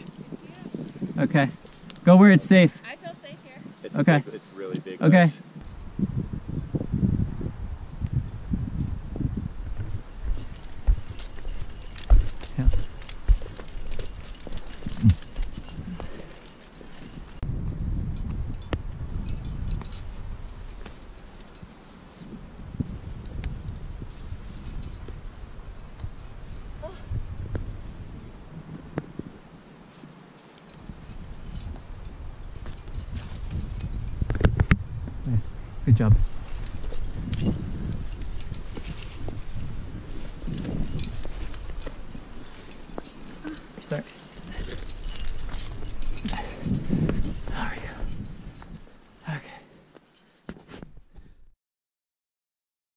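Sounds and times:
climbing gear clinking: 8.8 - 17.5, 30.3 - 51.3
knocks and scuffs on rock: 10.2 - 15.2.

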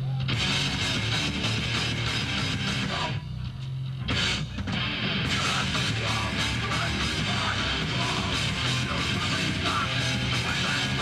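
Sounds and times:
hardcore band playing live: 0.0 - 11.0.

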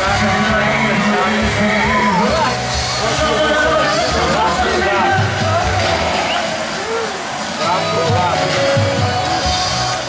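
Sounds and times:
falling water splashing: 0.0 - 10.0
people's voices: 0.0 - 10.0.

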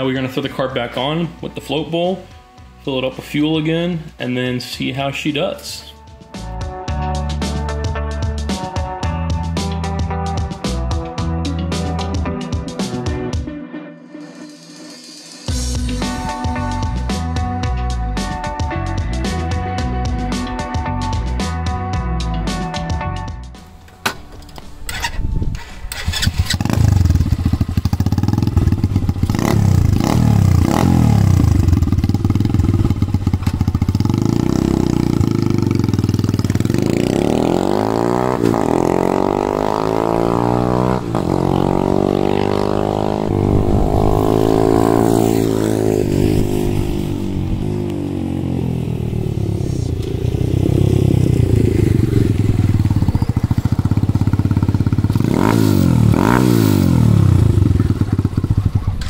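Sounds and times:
motorcycle engine revving: 24.9 - 59.0.

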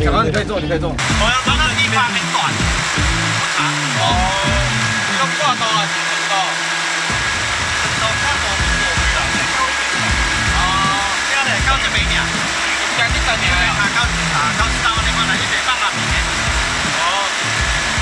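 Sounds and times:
men's voices: 0.0 - 6.6, 7.7 - 18.0
outboard motor running: 1.0 - 18.0.

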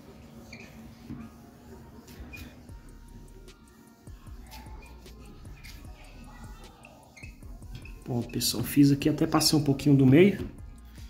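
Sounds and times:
high squeaks: 0.4 - 1.4, 2.1 - 2.6, 4.4 - 8.7
applicator rubbing on glass: 0.4 - 8.7.

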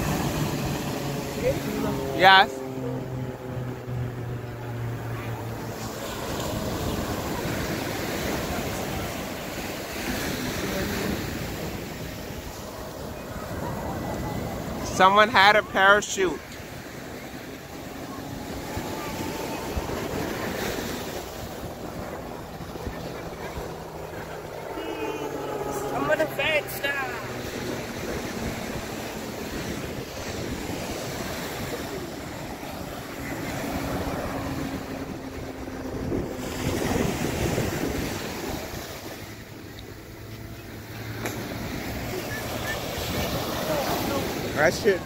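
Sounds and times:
beach surf: 0.0 - 45.0
propeller planes droning overhead: 0.0 - 45.0
wind on microphone: 16.4 - 45.0.

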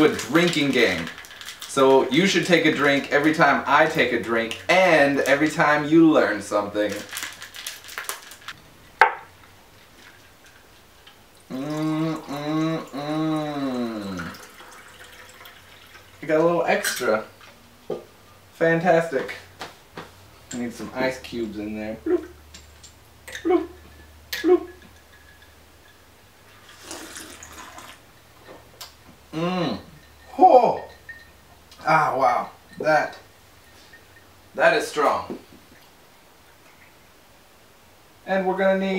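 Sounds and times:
fizzy slurping drink: 11.5 - 14.7, 26.5 - 28.0.

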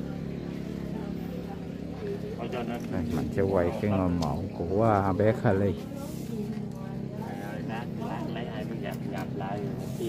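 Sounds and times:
engine running steadily: 0.0 - 10.0
low voices talking: 0.0 - 10.0.

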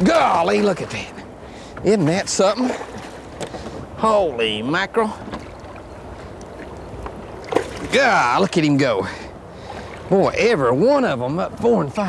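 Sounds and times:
low hiss of wind: 0.0 - 12.0
water splashing against boat: 0.0 - 12.0.

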